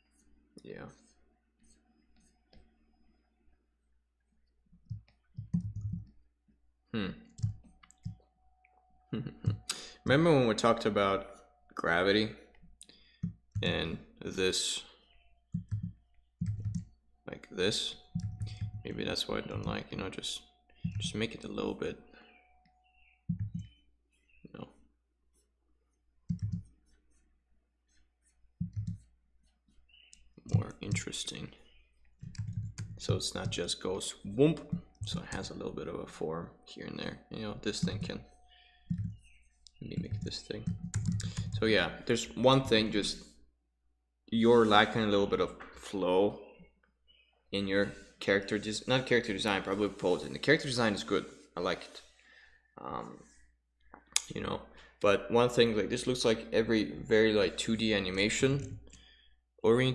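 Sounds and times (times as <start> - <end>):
keyboard and mouse clicks: 4.8 - 6.2, 7.4 - 8.2, 15.5 - 17.0, 18.1 - 18.8, 20.8 - 21.2, 23.3 - 23.8, 26.3 - 26.7, 28.6 - 29.1, 32.1 - 33.6, 38.8 - 41.6.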